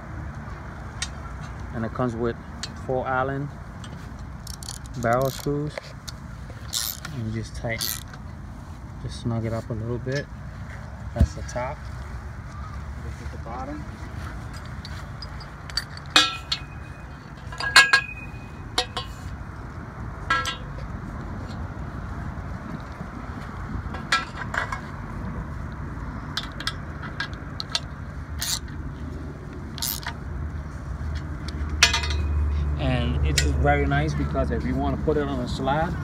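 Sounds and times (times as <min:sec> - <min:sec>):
metal pipe clinks and taps: 0:14.5 - 0:19.3, 0:20.2 - 0:20.9, 0:26.3 - 0:28.8, 0:29.8 - 0:30.2, 0:31.4 - 0:32.7.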